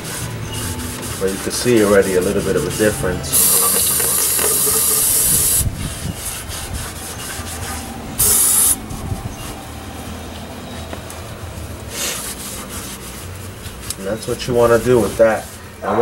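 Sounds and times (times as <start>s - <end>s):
rag scrubbing metal: 0.0s - 9.7s, 11.8s - 16.0s
aerosol spray hissing: 3.3s - 5.7s, 8.2s - 8.8s.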